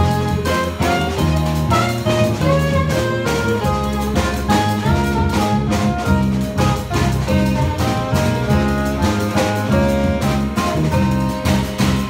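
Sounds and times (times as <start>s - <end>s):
alto saxophone melody: 0.0s - 12.0s
drums: 0.0s - 12.0s
electric bass: 0.0s - 12.0s
piano: 0.0s - 12.0s.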